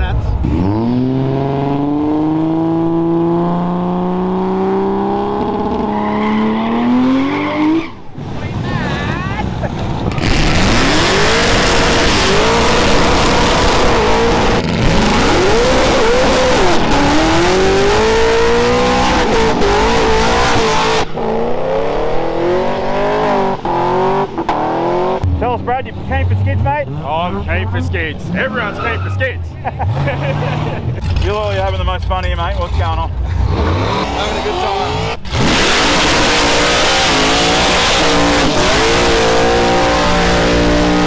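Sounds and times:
car engine revving: 0.0 - 41.0.

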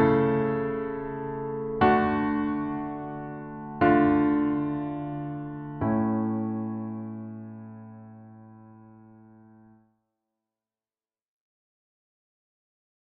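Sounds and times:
piano chords ringing: 0.0 - 9.8.

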